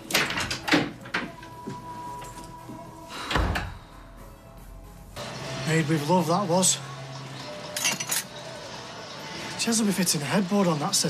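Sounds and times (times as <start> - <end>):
kitchenware clinking: 7.7 - 8.4.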